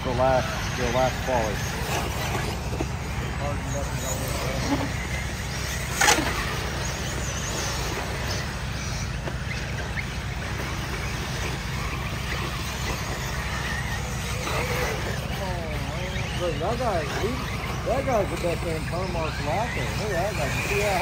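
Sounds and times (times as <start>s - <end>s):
faint whine of toy car motors: 0.0s - 21.0s.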